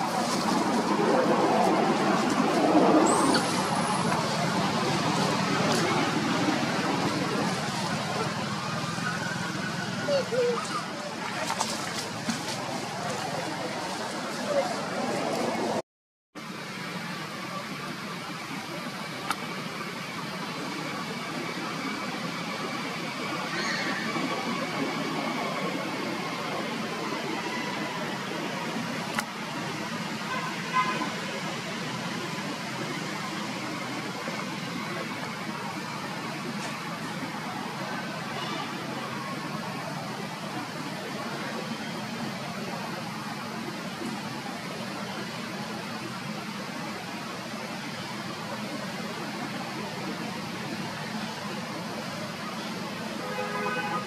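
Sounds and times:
faint distant voices: 0:00.0 - 0:15.8, 0:16.6 - 0:54.0
outdoor background noise: 0:00.0 - 0:54.0.

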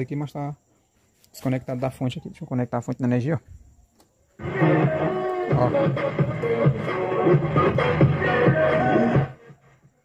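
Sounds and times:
music through amplifier: 0:04.4 - 0:09.8.

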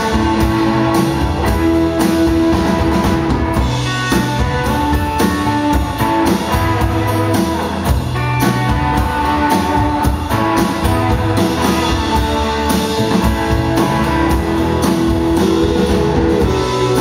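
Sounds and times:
drum kit beat: 0:00.0 - 0:17.0
electric guitars: 0:00.0 - 0:17.0.

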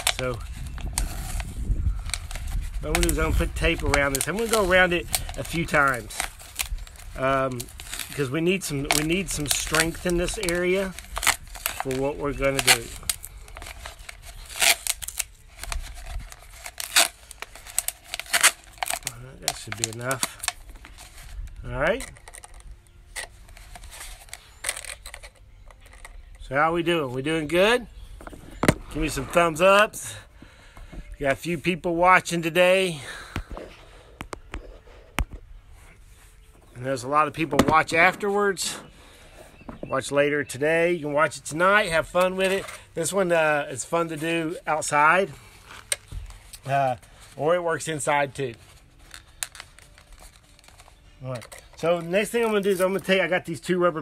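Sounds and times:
masking tape crackling: 0:00.0 - 0:29.9, 0:31.3 - 0:54.0
plastic bottles crinkling: 0:00.0 - 0:31.0, 0:36.8 - 0:40.0, 0:41.2 - 0:53.7.

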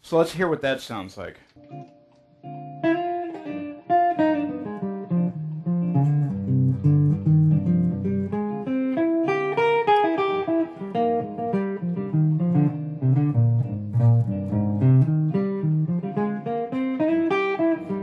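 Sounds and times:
electric guitar jazz improvisation: 0:01.4 - 0:18.0.

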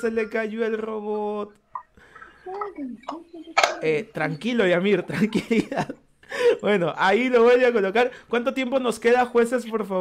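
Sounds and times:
voices talking: 0:00.0 - 0:10.0.

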